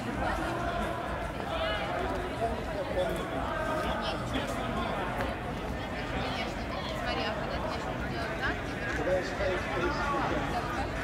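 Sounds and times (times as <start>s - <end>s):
indistinct voices: 0.0s - 11.0s.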